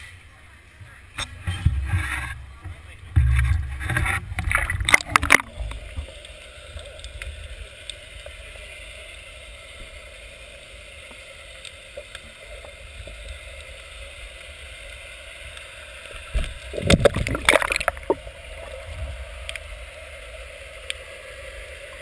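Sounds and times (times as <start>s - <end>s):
muffled underwater hiss: 0.0s - 22.0s
water splashing: 0.9s - 8.0s, 11.6s - 22.0s
camera bumping and rumbling: 3.1s - 5.6s
faint clicks: 4.4s - 8.4s, 11.0s - 17.0s, 19.4s - 19.7s, 20.8s - 21.1s.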